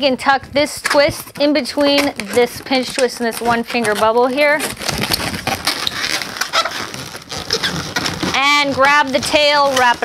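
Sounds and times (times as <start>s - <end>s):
balloons rubbing and squeaking: 0.0s - 10.0s.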